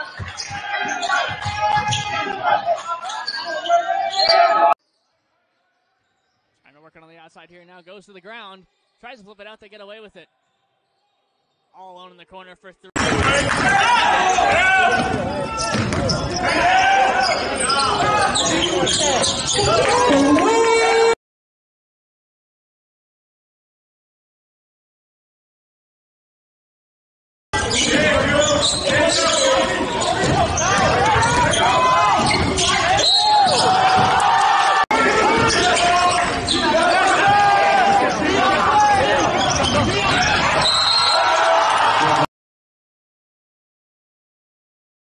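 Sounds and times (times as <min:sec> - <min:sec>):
sneakers squeaking: 0:00.0 - 0:05.1, 0:14.2 - 0:20.0, 0:27.6 - 0:41.9
voices calling out: 0:27.6 - 0:42.3.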